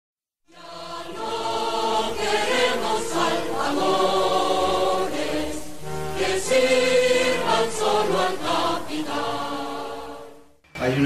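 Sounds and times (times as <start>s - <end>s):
choir singing held chords: 0.5s - 11.0s.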